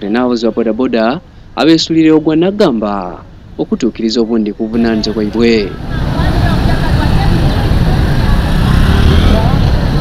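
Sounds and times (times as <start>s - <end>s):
people talking: 0.0s - 10.0s
traffic rumble: 0.0s - 10.0s.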